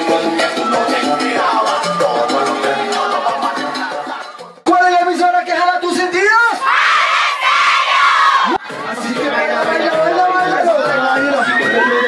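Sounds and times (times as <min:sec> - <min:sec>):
crowd of girls screaming: 0:11.2 - 0:12.0.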